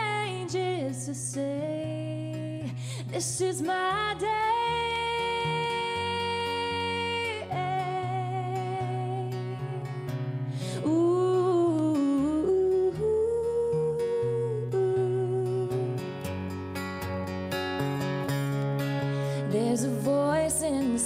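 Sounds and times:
woman singing wordless phrase: 0.0s - 9.9s, 10.8s - 16.0s, 19.4s - 21.0s
acoustic guitar chords: 0.0s - 21.0s.

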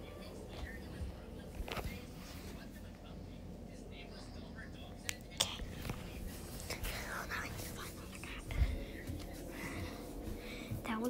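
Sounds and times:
soft breathy whispering: 0.0s - 11.0s.

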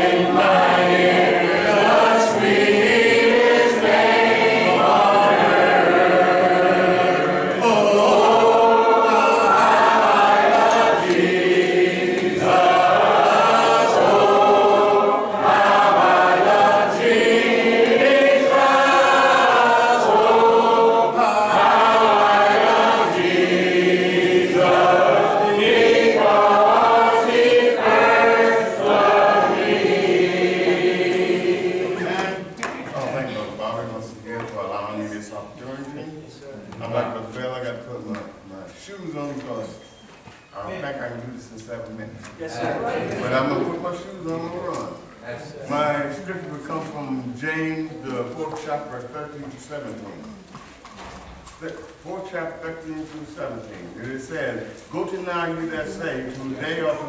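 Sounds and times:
congregation singing a hymn: 0.0s - 35.6s, 42.4s - 57.0s.

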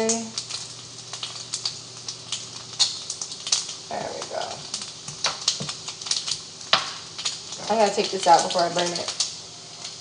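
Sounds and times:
bacon sizzling in a pan: 0.0s - 10.0s.

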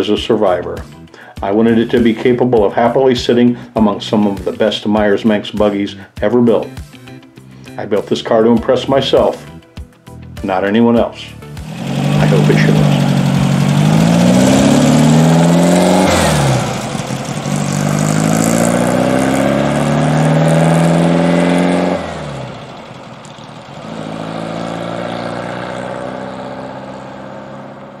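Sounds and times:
buggy engine accelerating: 11.4s - 28.0s.

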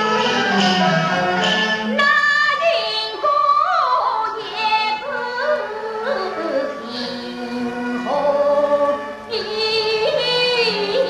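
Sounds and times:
woman singing opera aria: 1.9s - 11.0s.

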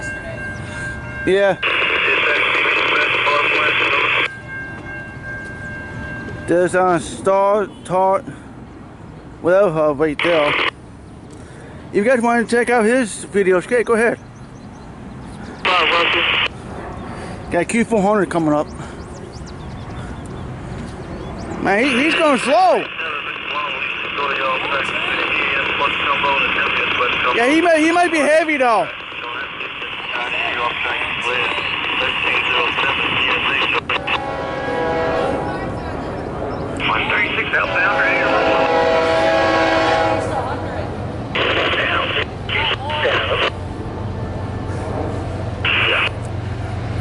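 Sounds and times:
radio static: 1.6s - 4.3s, 10.2s - 10.8s, 15.6s - 16.5s, 21.7s - 34.3s, 36.8s - 38.8s, 41.3s - 43.6s, 45.6s - 46.2s
voice over radio: 1.6s - 4.3s, 10.2s - 10.7s, 15.6s - 16.5s, 21.7s - 34.2s, 36.8s - 38.8s, 41.4s - 43.6s, 45.6s - 46.2s.

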